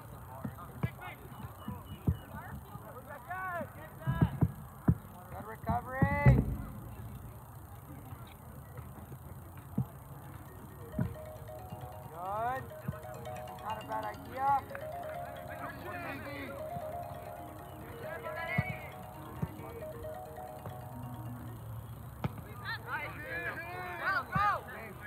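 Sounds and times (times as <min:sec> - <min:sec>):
faint musical tones: 0:06.1 - 0:09.2, 0:09.8 - 0:23.8.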